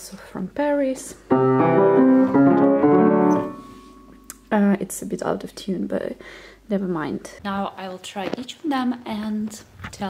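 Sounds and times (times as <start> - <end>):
out of tune piano chords: 1.3 - 4.3.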